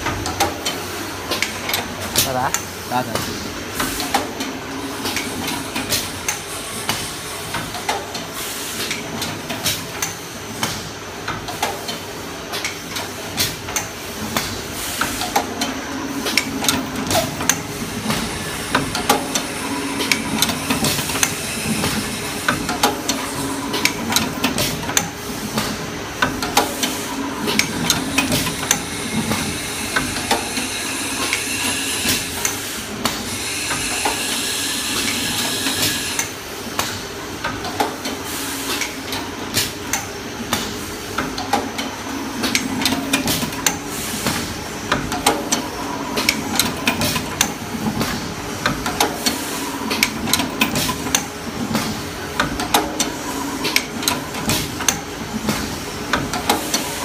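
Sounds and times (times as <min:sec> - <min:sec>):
steady mechanical hum: 0:00.0 - 0:57.0.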